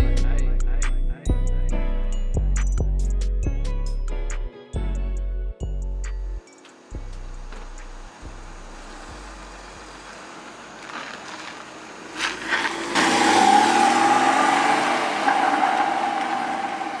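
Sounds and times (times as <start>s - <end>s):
sports car engine revving: 7.0s - 17.0s
car accelerating away: 7.2s - 17.0s.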